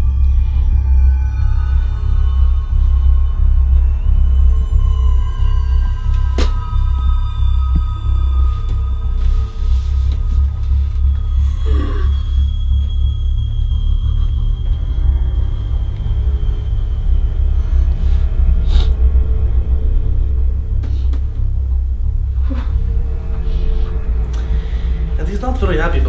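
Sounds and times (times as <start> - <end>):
deep rumbling drone: 0.0 - 26.0
thin high sustained tones: 0.0 - 26.0.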